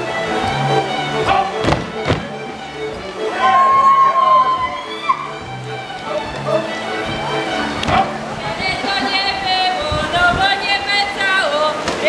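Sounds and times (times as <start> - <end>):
steady bass notes: 0.0 - 8.9
string band playing folk dance music: 0.0 - 12.0
long high held note: 3.3 - 5.4.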